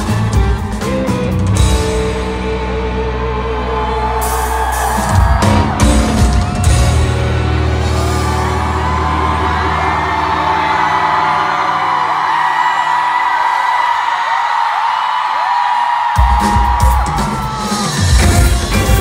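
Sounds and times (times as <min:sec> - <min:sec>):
band playing: 0:00.0 - 0:13.3, 0:16.2 - 0:19.0
crowd screaming and cheering: 0:00.0 - 0:19.0.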